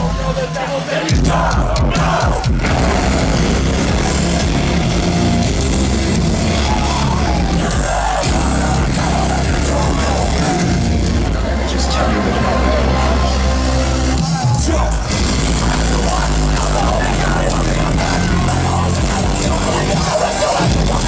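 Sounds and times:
distorted guitars: 0:00.0 - 0:21.0
drums: 0:00.0 - 0:21.0
live metal band playing: 0:00.0 - 0:21.0.

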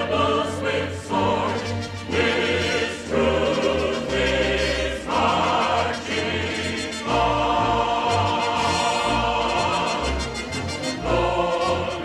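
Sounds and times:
choir singing held chords: 0:00.0 - 0:12.0
orchestra playing: 0:00.0 - 0:12.0.

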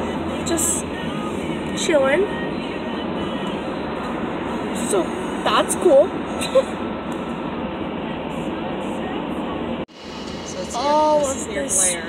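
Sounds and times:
car cabin road rumble: 0:00.0 - 0:12.0.

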